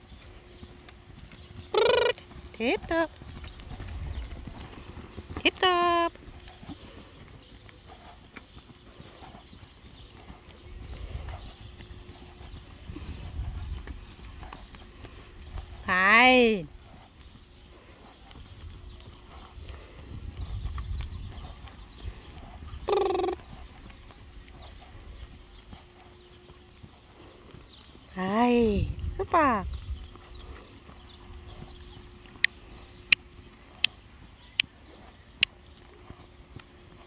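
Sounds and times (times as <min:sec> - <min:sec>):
pony hoofbeats on sand: 0:00.0 - 0:37.0.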